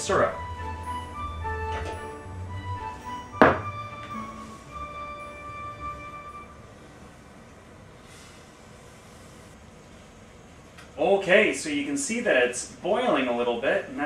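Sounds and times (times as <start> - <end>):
soft background music: 0.0 - 6.8.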